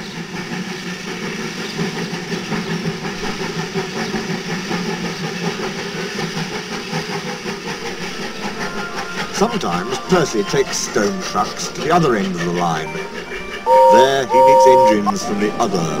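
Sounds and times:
train running: 0.0 - 16.0.

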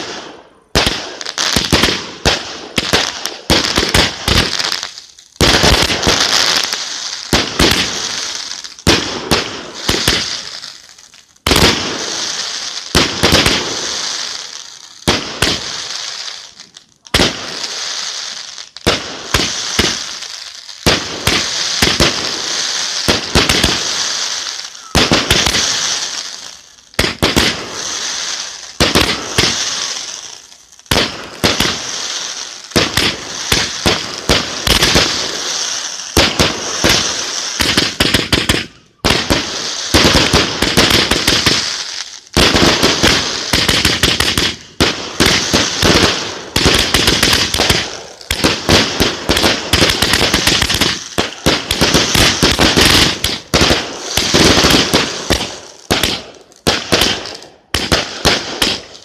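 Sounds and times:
fireworks bangs and crackle: 0.0 - 59.0.

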